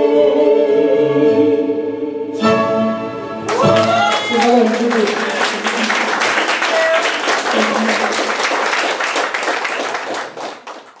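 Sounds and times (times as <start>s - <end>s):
audience applauding: 3.5s - 11.0s.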